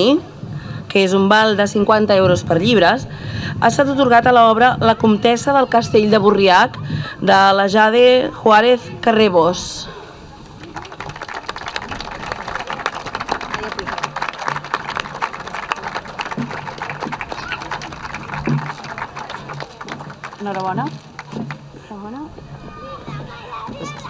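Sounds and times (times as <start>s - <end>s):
audience applauding: 10.4s - 21.8s.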